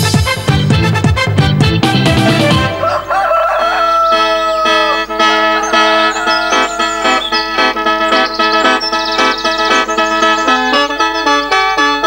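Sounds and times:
background music with a beat: 0:00.0 - 0:02.8, 0:04.8 - 0:12.0
held music notes: 0:00.0 - 0:12.0
rooster crowing: 0:02.6 - 0:07.7.

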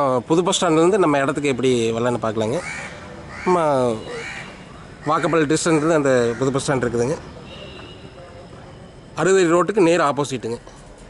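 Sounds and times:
crow cawing: 0:02.6 - 0:06.8.

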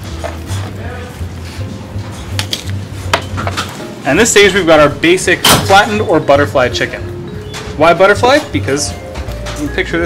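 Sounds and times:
jazzy instrumental music: 0:00.0 - 0:10.0.

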